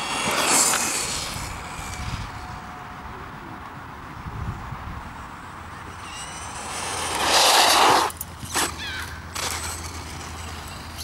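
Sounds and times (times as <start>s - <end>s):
rc truck motor whine: 0.0s - 2.7s, 5.8s - 11.0s.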